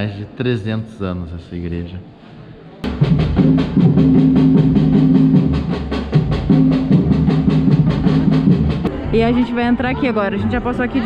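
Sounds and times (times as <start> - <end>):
bass drums playing fast rhythm: 2.8 - 10.1.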